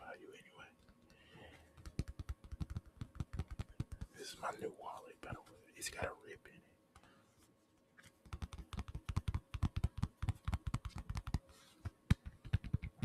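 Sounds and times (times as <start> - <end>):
fingers tapping on a wallet: 1.7 - 4.2, 8.2 - 13.0.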